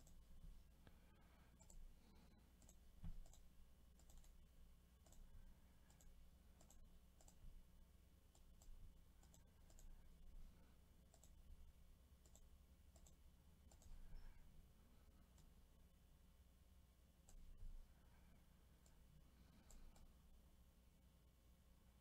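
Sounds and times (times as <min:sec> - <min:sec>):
computer mouse clicks: 0:00.0 - 0:00.2, 0:00.8 - 0:07.5, 0:08.3 - 0:10.1, 0:11.0 - 0:11.5, 0:12.2 - 0:14.3, 0:15.3 - 0:15.6, 0:17.2 - 0:17.6, 0:18.8 - 0:20.1.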